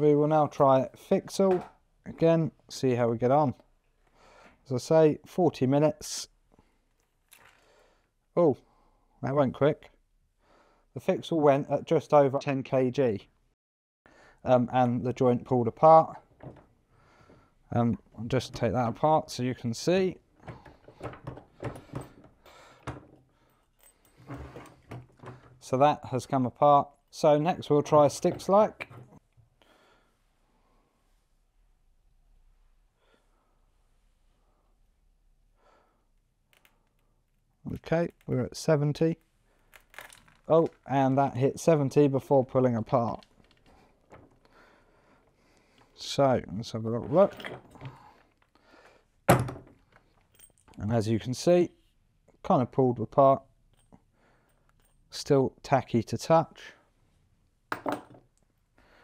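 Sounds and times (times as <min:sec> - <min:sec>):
faint breaths: 0:04.0 - 0:04.7, 0:06.5 - 0:09.2, 0:10.4 - 0:11.0, 0:14.1 - 0:14.5, 0:16.8 - 0:17.7, 0:20.4 - 0:25.6, 0:29.5 - 0:31.3, 0:32.8 - 0:36.2, 0:43.4 - 0:46.0, 0:47.7 - 0:49.2, 0:53.8 - 0:55.0, 0:58.8 - 0:59.0.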